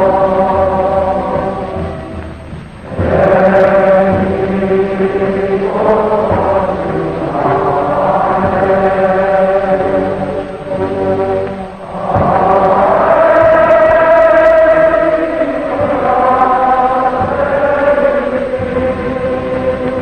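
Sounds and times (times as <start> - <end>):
voices holding long notes: 0.0 - 20.0.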